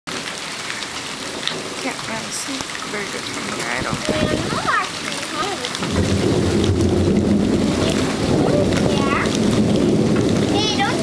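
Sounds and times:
steady rain falling: 0.1 - 11.0.

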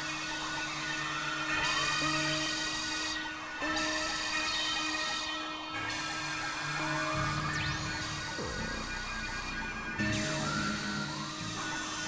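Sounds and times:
synthesizer drone music: 0.0 - 12.0.

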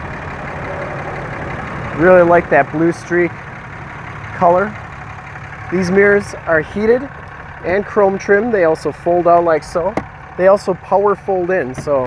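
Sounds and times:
vehicle engine idling: 0.0 - 12.0.

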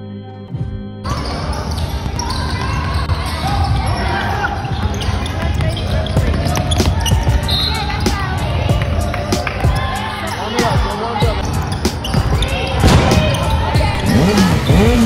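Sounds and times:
echoing voices: 0.0 - 15.0.

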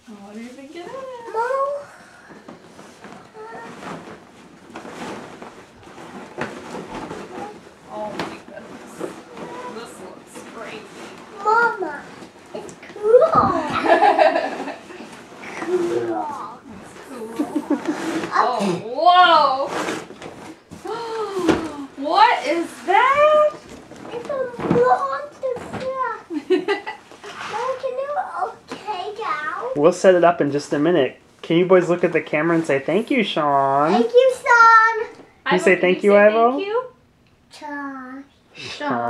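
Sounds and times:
cloth bag rustling: 2.6 - 25.8
soft child's voice: 11.4 - 12.0, 24.1 - 26.2, 37.5 - 39.0.

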